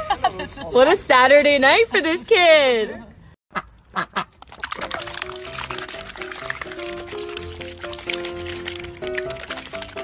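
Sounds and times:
ducks quacking: 0:03.5 - 0:04.4
background music with held notes: 0:04.9 - 0:10.0.

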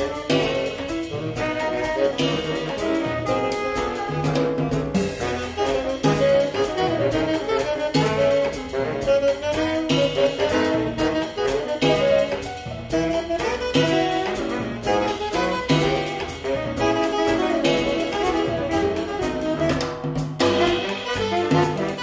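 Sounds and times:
drum kit: 0:00.0 - 0:22.0
piano: 0:00.0 - 0:22.0
saxophones playing melody: 0:00.0 - 0:22.0
upright bass: 0:00.0 - 0:22.0.

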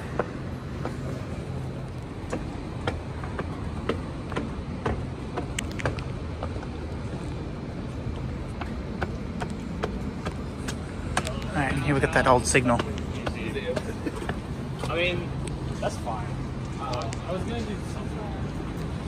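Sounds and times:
footsteps climbing stairs: 0:00.0 - 0:11.5
low hum of city traffic: 0:00.0 - 0:19.0.

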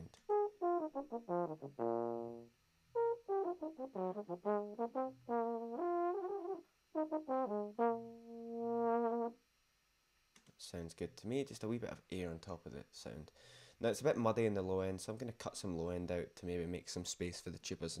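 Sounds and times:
euphonium melody: 0:00.2 - 0:09.3.

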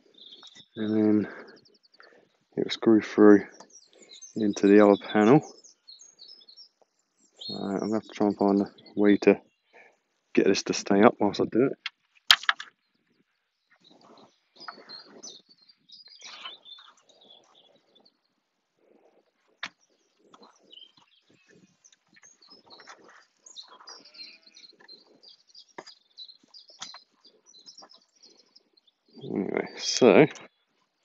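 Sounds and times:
small birds chirping: 0:00.0 - 0:31.0.

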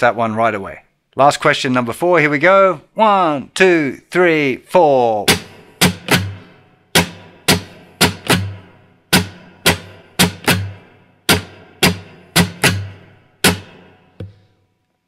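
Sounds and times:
acoustic guitar strumming: 0:05.2 - 0:14.4.

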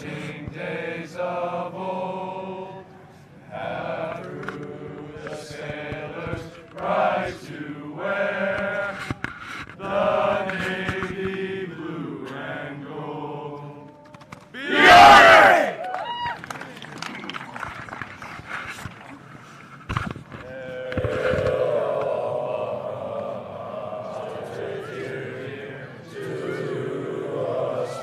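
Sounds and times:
men singing in unison: 0:00.0 - 0:02.8, 0:03.5 - 0:09.2, 0:09.8 - 0:14.0, 0:20.5 - 0:28.0
group shout: 0:14.6 - 0:16.2.

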